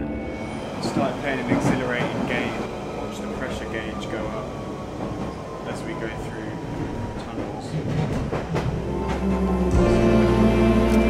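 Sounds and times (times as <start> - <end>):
train rumbling through tunnel: 0.0 - 11.0.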